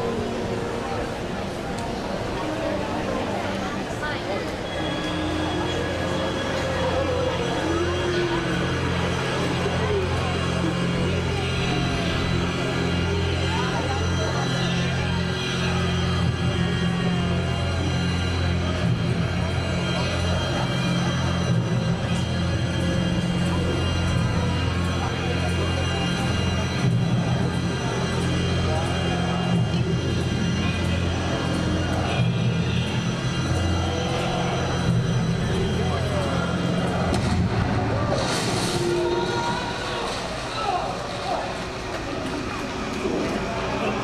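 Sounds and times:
audience chatter: 0.0 - 44.0
droning suspenseful music: 0.0 - 44.0.

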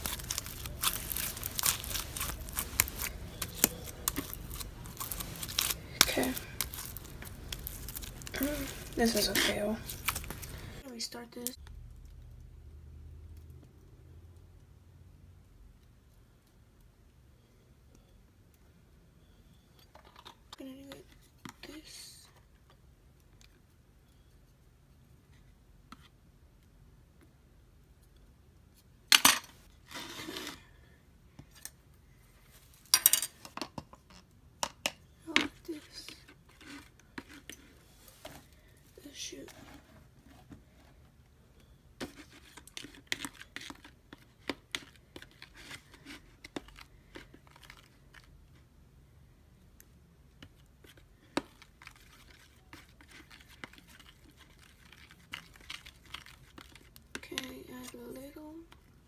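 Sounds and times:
crinkling packaging: 0.0 - 10.8, 42.0 - 48.4, 50.8 - 57.9.

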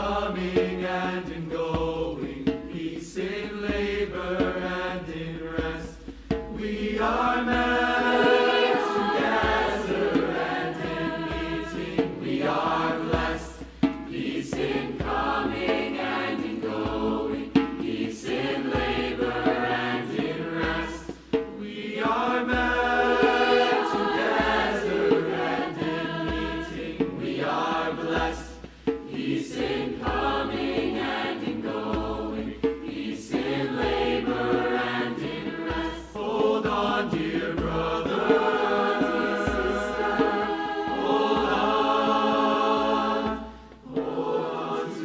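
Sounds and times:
choir singing in harmony: 0.0 - 45.0.

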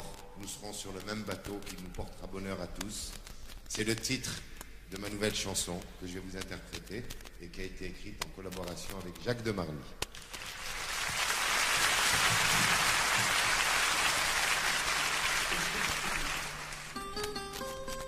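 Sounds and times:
audience applauding: 10.2 - 17.3
plucked string notes: 17.0 - 18.0.

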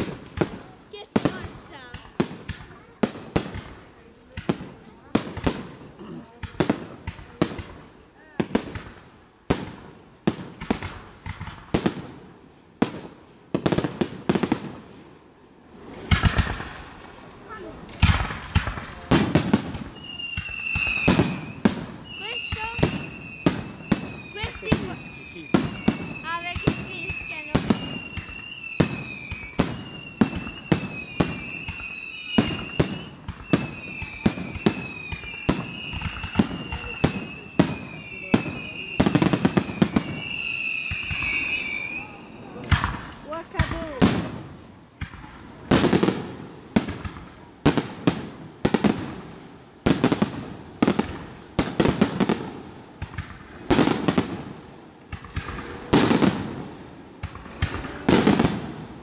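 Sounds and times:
fireworks bursting: 0.0 - 59.0
falling whistles: 19.9 - 42.7.

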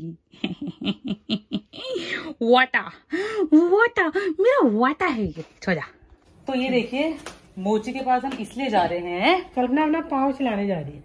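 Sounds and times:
woman giggling: 0.0 - 2.2.

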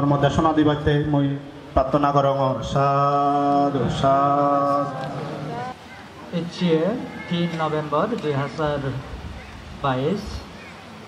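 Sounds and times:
man speaking into a microphone: 0.0 - 5.0, 6.3 - 9.1.

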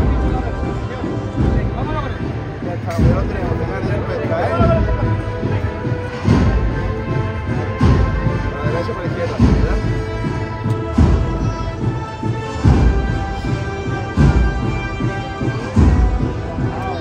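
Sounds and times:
band playing processional march: 0.0 - 17.0
heavy drum beat: 0.0 - 17.0.

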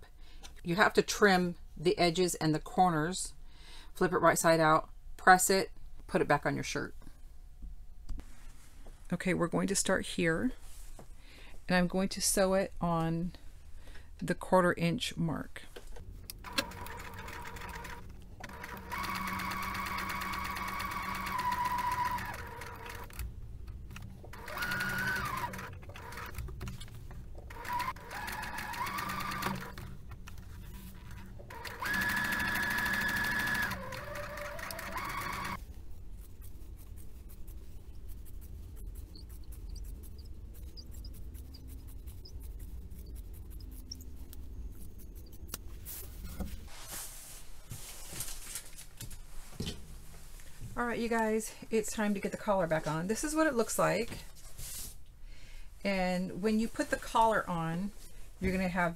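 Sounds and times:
sewing machine motor whine: 16.5 - 23.2, 24.3 - 26.4, 27.5 - 30.0, 31.0 - 35.6.

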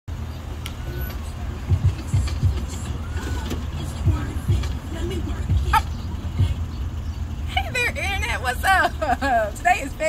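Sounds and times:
low outdoor rumble: 0.1 - 10.0
woman speaking: 7.5 - 10.0.

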